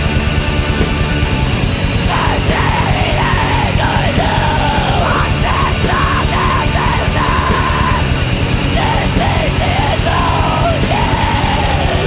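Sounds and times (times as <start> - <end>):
distorted punk band playing: 0.0 - 12.0.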